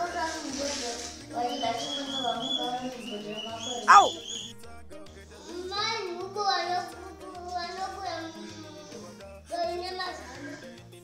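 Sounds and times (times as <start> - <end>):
child speaking: 3.8 - 4.2.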